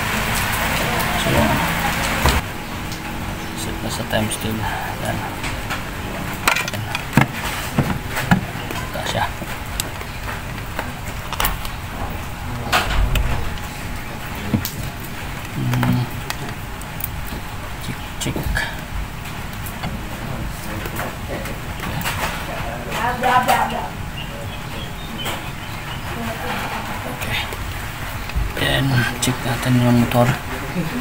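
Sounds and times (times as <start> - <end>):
low background hum: 0.0 - 31.0
hands working on wires: 3.9 - 18.5.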